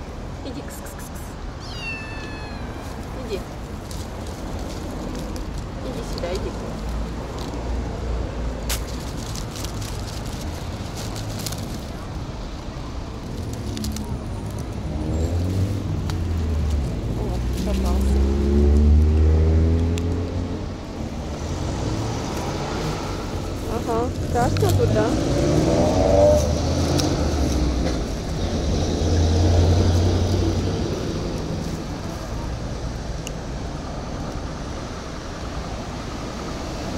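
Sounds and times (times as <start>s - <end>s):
low traffic rumble: 0.0s - 36.9s
vehicle engine: 0.0s - 36.9s.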